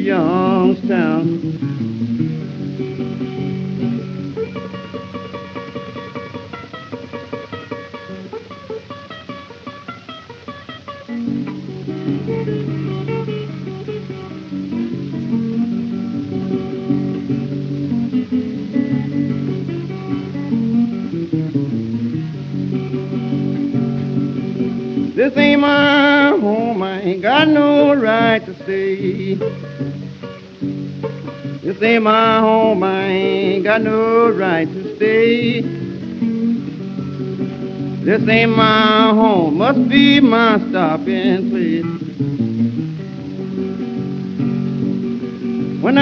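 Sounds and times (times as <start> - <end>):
acoustic blues guitar: 0.0 - 46.0.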